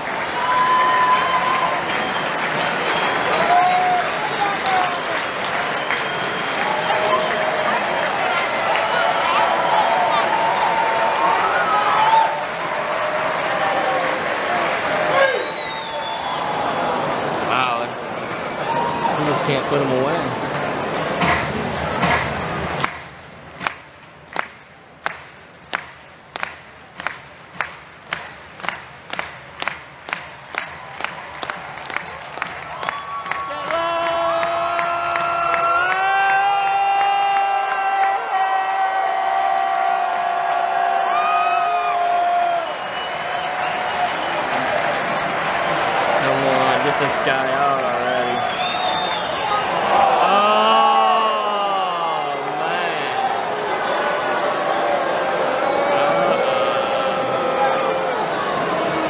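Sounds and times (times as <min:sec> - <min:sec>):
sharp rhythmic claps: 0:00.0 - 0:18.4, 0:20.4 - 0:49.7
stadium crowd cheering and yelling: 0:00.0 - 0:59.0.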